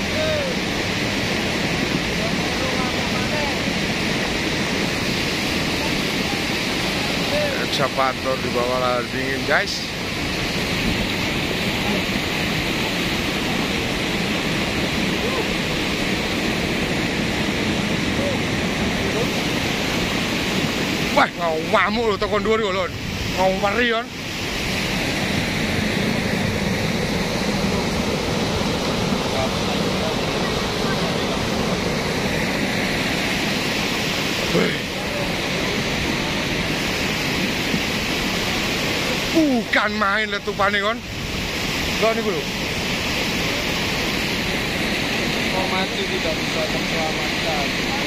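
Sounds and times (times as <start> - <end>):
muddy floodwater rushing: 0.0 - 48.0.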